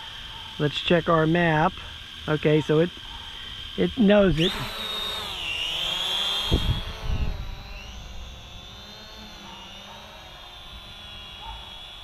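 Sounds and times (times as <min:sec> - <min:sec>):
drone propellers whining: 0:00.0 - 0:12.0.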